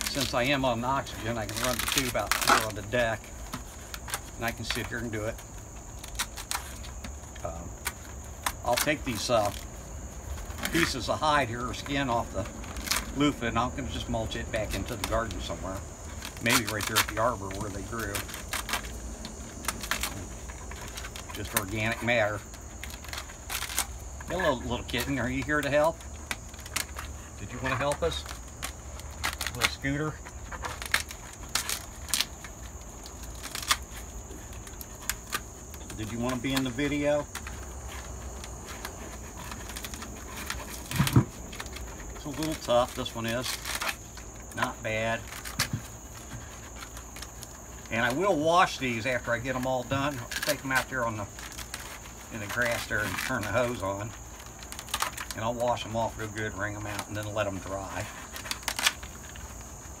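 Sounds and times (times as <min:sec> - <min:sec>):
dry clicks and crackles: 0:00.0 - 1:00.0.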